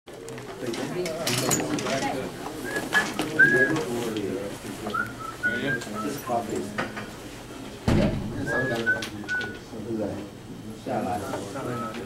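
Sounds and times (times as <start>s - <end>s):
people talking: 0.2s - 12.0s.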